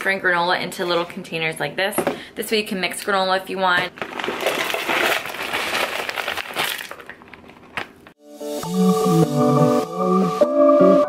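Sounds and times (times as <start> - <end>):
granola rattling into glass jar: 4.0 - 7.8.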